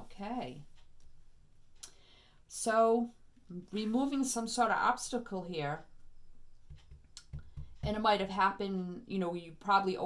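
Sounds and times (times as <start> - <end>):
person speaking: 2.5 - 5.9, 7.2 - 10.0.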